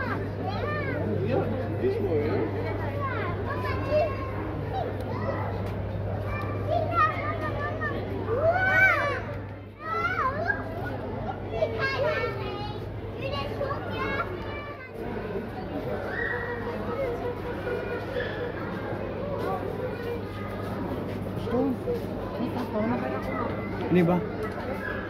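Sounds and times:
children chattering and calling out: 0.0 - 25.0.

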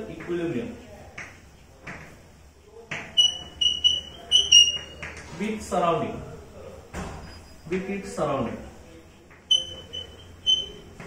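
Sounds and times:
chalk squeaking on blackboard: 2.9 - 5.4, 9.4 - 11.0.

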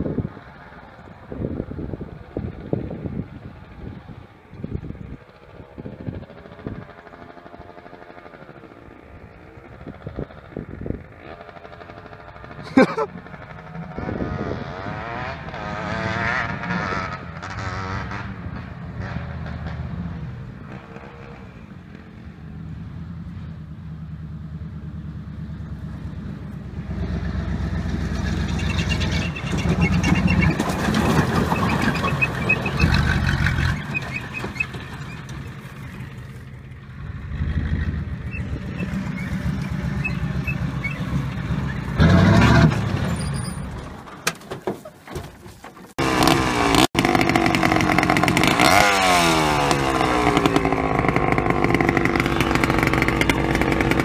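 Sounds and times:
diesel truck engine revving: 22.6 - 44.2, 45.9 - 54.0
tyres spinning on dirt: 25.9 - 54.0.

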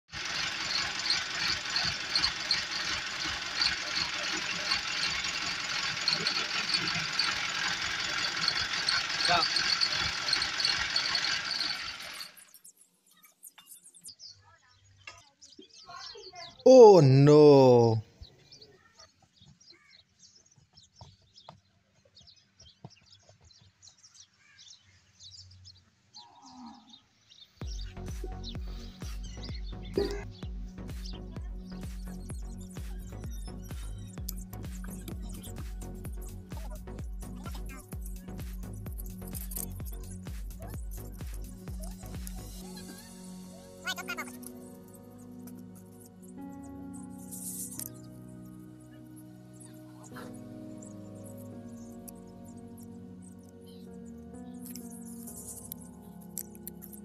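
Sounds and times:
engine running: 0.1 - 12.5
small birds chirping: 0.5 - 17.0, 17.9 - 57.0
music with heavy beat: 39.8 - 42.4
farm animal calling: 43.8 - 44.5.

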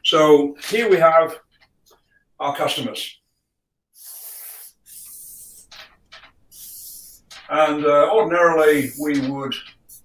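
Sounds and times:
marker scratching on paper: 4.0 - 7.6, 8.5 - 10.0.

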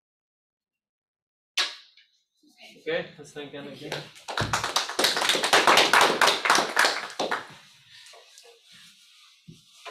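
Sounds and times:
audience applauding: 4.2 - 7.6.

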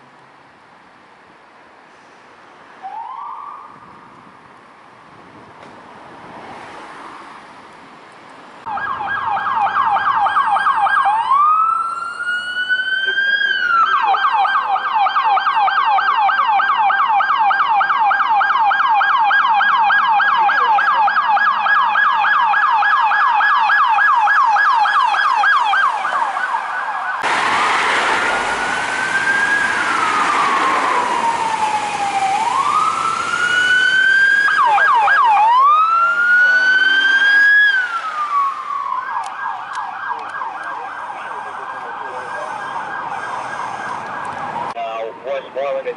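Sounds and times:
road noise: 0.0 - 45.9
police siren yelp and wail: 2.8 - 4.0, 8.6 - 45.5.

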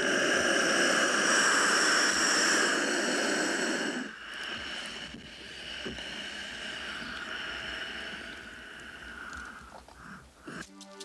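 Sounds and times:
loud hissing with faint whine: 0.0 - 10.7.

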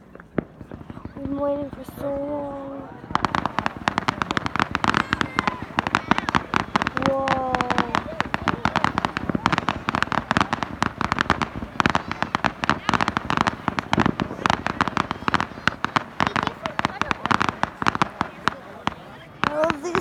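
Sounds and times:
fireworks crackling: 0.0 - 20.0.

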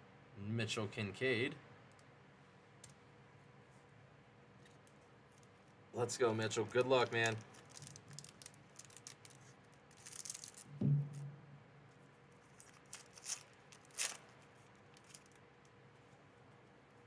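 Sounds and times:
foil wrapper tearing and crinkling: 6.4 - 10.7, 12.5 - 15.4
scissors cutting foil wrapper: 6.6 - 10.7, 12.6 - 14.4
soft thump: 10.7 - 11.4.

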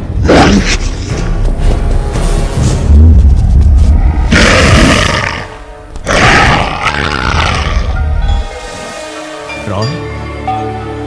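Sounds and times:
deep rumbling drone: 0.0 - 5.7.

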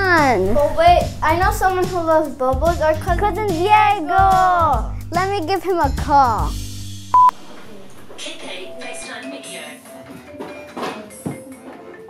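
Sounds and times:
smartphone electronic beep: 7.1 - 7.4.

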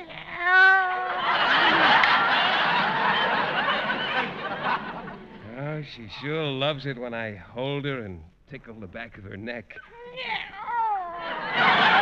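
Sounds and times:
studio audience laughing: 1.1 - 5.4, 11.3 - 12.0.

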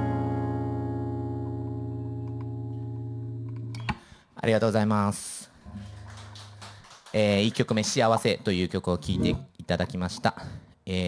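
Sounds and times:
acoustic guitar chord ringing: 0.0 - 3.7.

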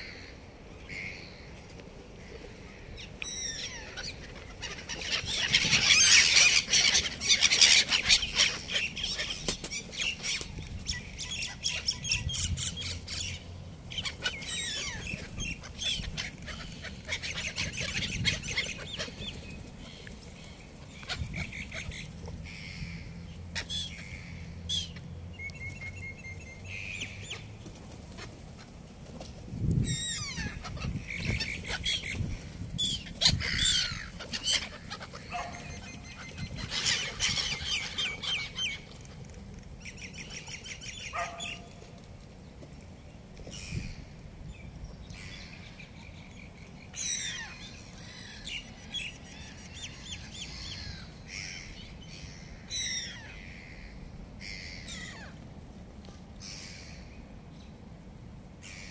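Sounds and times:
gulls squawking: 2.3 - 25.1, 29.8 - 39.0.

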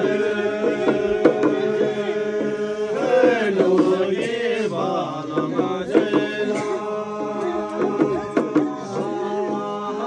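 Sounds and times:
sharp percussive strike: 0.0 - 10.0
voices chanting: 0.0 - 10.0.

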